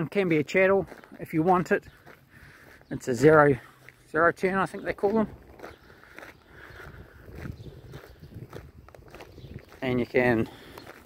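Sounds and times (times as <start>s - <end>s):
footsteps on grass: 0.0s - 11.0s.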